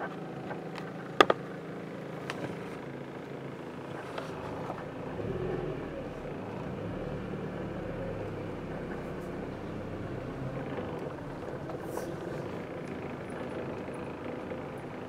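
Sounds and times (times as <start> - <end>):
car engine and road rumble: 0.0 - 15.0.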